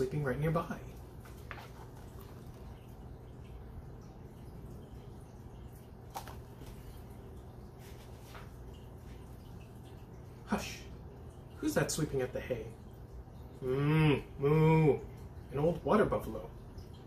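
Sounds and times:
steady low hum: 0.0 - 17.0
book pages rustling: 1.2 - 2.7, 6.1 - 6.9.

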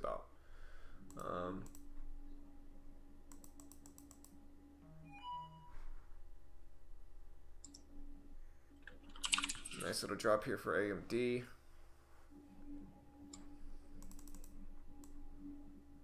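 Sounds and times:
keyboard typing: 3.3 - 4.4, 7.6 - 7.8, 8.8 - 10.0, 13.3 - 15.2
brief electronic tone: 4.8 - 6.1.

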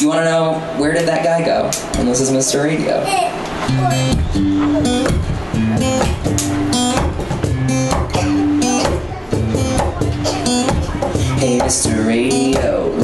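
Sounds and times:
acoustic guitar strumming: 3.2 - 13.0.

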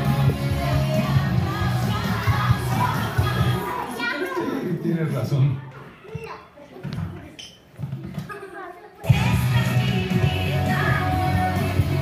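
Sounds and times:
music playing: 0.0 - 3.9, 9.1 - 12.0
young children talking and calling out: 2.0 - 4.7, 5.6 - 9.3.

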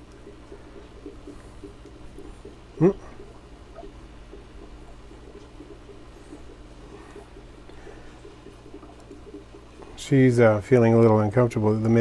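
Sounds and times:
low background hum: 0.0 - 12.0
man humming: 2.8 - 3.2.

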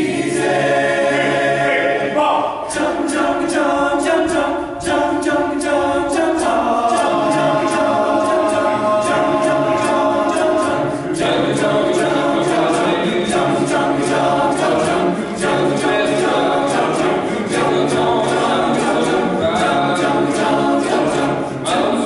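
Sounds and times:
men's choir singing a cappella: 0.0 - 22.0.

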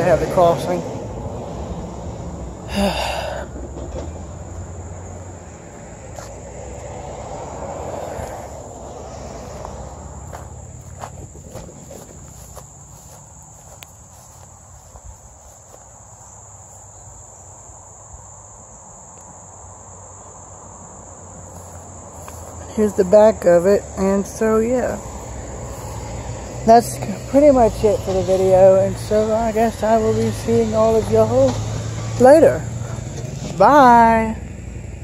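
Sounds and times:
high-pitched insect chorus: 0.0 - 35.0.

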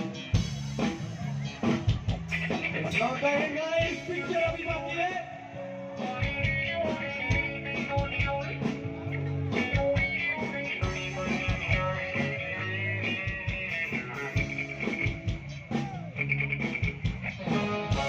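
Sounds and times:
bass guitar: 0.0 - 18.0
electric guitar: 0.0 - 18.0.

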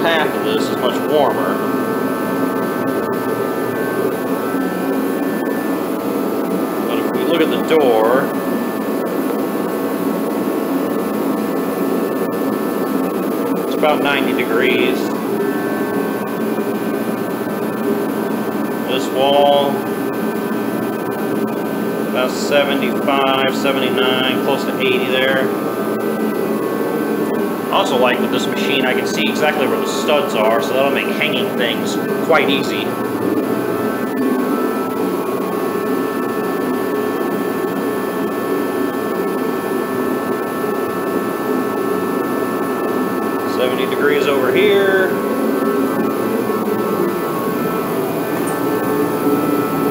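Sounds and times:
faint steady whine: 0.0 - 49.9
heater burner rushing drone: 0.0 - 49.9.

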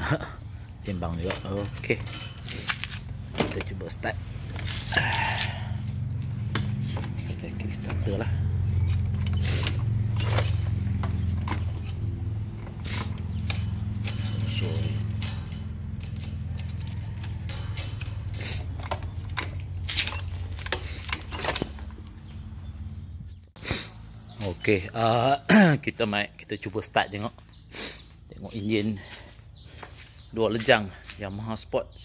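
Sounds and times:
keys rattling in ignition: 0.7 - 23.0
two-stroke engine idling: 0.9 - 22.8.

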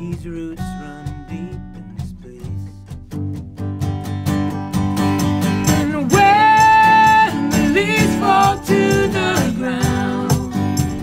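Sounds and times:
acoustic guitars strumming: 0.0 - 11.0
cajon beat: 0.0 - 11.0
person singing: 5.6 - 11.0.

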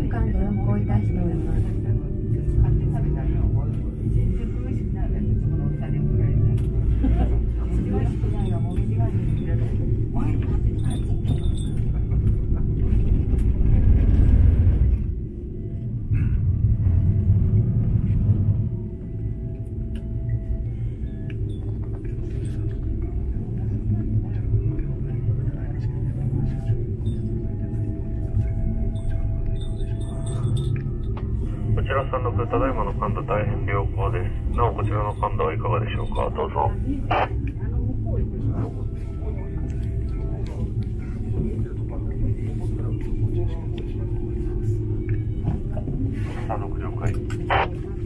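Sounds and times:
gondola low rumble: 0.0 - 48.0
faint voices: 31.7 - 48.0.

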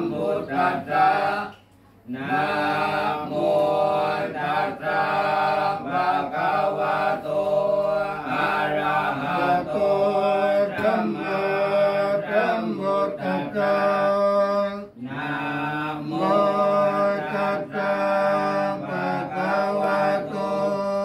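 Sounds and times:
monks chanting: 0.0 - 21.0.

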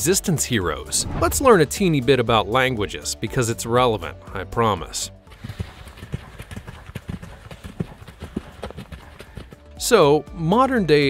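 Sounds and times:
background music: 0.0 - 11.0
horse hooves on dirt: 5.3 - 9.8.

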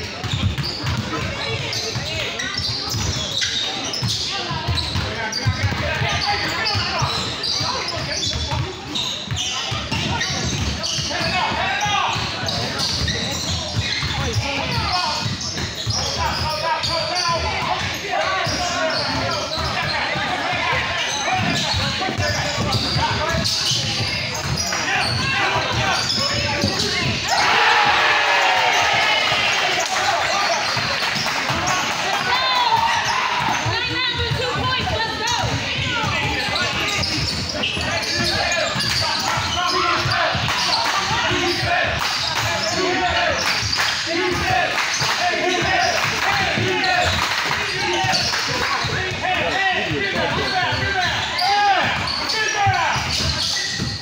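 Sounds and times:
basketball bouncing on court: 0.0 - 54.0
players and spectators shouting: 9.3 - 54.0.

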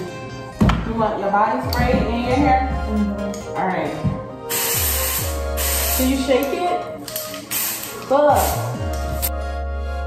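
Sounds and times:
spray can hissing: 4.5 - 6.3, 7.1 - 9.3.

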